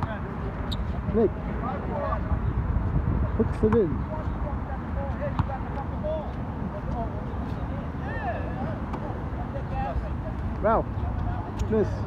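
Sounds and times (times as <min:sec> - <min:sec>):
players calling out: 0:03.3 - 0:12.0.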